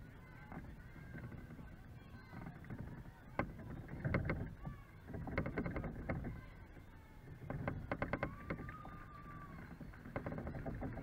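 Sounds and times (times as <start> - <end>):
faint distant voices: 0.0 - 11.0
wind rumbling on microphone: 0.0 - 11.0.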